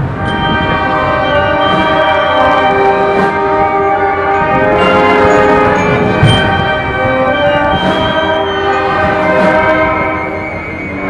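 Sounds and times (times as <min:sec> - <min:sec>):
brass band playing a funeral march: 0:00.0 - 0:11.0.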